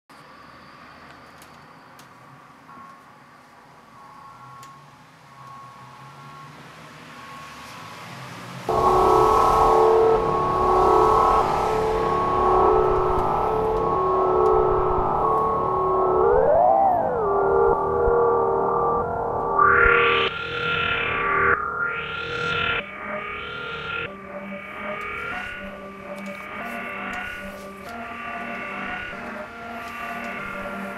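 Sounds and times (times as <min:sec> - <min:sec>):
faint sustained electronic tones: 0:08.7 - 0:30.9
loud sustained synth chord: 0:08.7 - 0:30.9.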